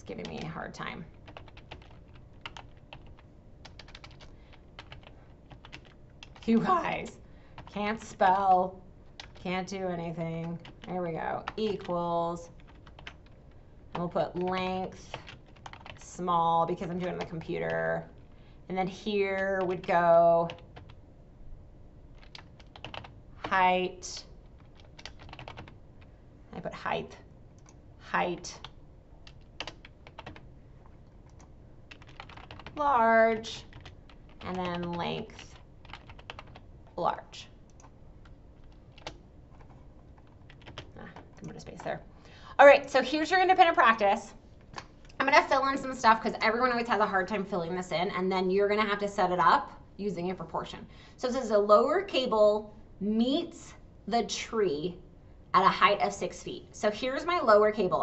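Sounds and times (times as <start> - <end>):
typing on computer keyboard: 1.2 - 6.6, 9.2 - 9.6, 10.4 - 12.0, 12.6 - 16.0, 22.1 - 23.6, 24.4 - 25.8, 28.6 - 32.8, 33.4 - 36.6, 37.6 - 41.9.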